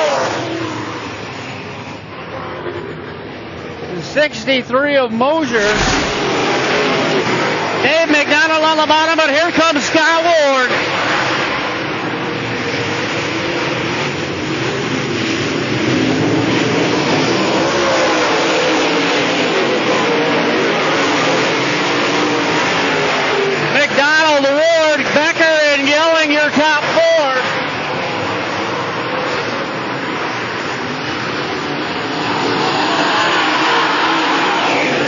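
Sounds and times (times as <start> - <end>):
race car engines at speed: 0.0 - 35.0.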